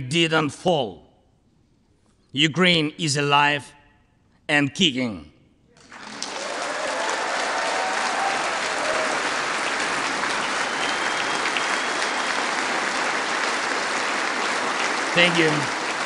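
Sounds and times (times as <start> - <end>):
large crowd applauding: 5.8 - 16.0.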